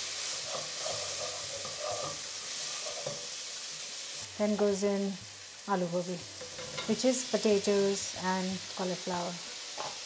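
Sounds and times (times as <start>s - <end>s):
food sizzling in a frying pan: 0.0s - 10.0s
wooden spatula scraping pan: 0.4s - 3.3s.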